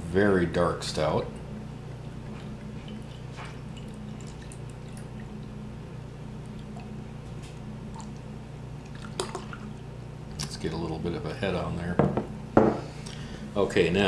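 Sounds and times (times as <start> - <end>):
beer pouring into glass: 1.5 - 5.6, 8.8 - 9.8.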